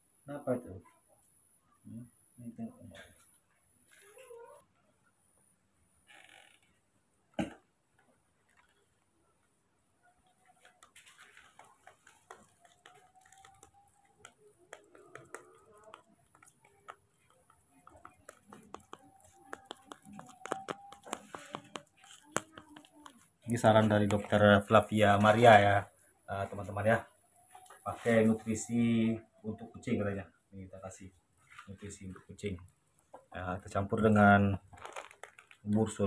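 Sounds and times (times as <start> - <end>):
spoon stirring in plastic bowl: 10.6 - 24.8.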